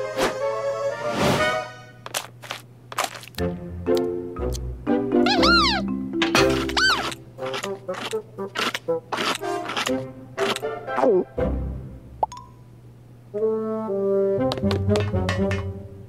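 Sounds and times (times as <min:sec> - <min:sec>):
cartoon music with detached notes: 0:03.4 - 0:09.4
cartoon creature calling: 0:05.2 - 0:05.9, 0:06.7 - 0:07.1.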